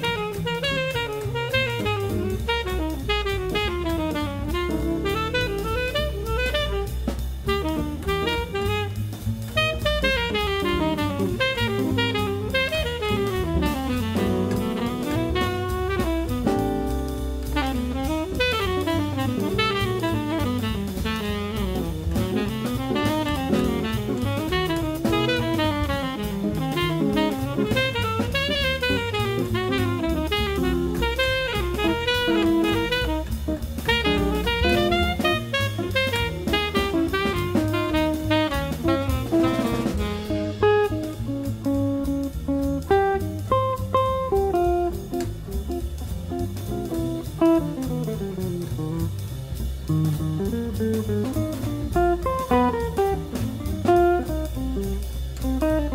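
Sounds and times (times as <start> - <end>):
saxophone playing fast lines: 0.0 - 41.8, 51.0 - 55.0
bass: 0.0 - 55.9
drum kit: 0.0 - 55.9
guitar: 0.0 - 55.9.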